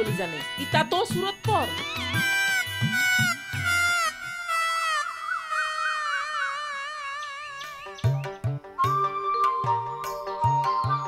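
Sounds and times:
high warbling tone: 2.2s - 8.4s.

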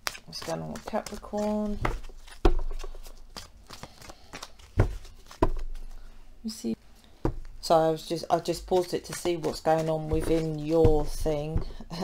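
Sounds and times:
cards being shuffled: 0.0s - 6.0s, 8.3s - 11.8s.

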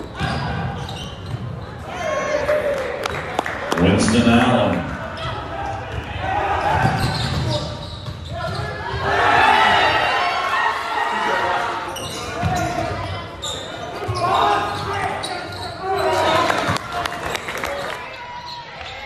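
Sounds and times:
echoing voices: 1.8s - 7.8s.

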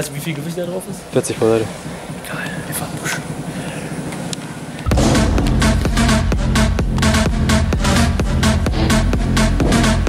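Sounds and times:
electronic dance music: 4.9s - 10.0s.

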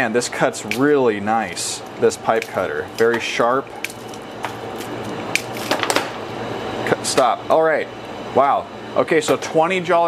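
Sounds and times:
low background hum: 0.0s - 10.0s
pipe cutter cracking candies: 3.8s - 6.1s.

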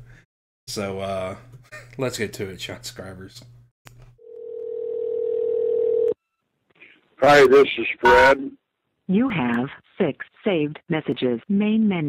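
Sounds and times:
steady telephone tone: 4.2s - 6.4s.

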